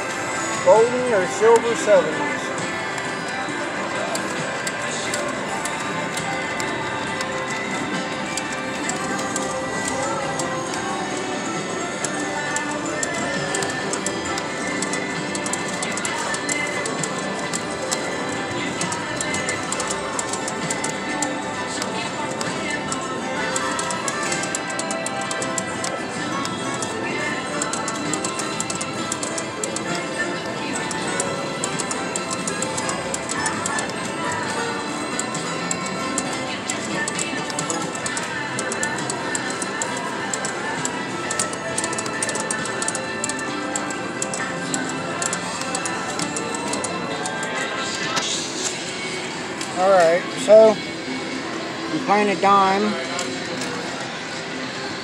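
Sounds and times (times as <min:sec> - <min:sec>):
slot reels ticking: 0:00.6 - 0:02.3, 0:12.0 - 0:47.7
voices: 0:00.6 - 0:02.8.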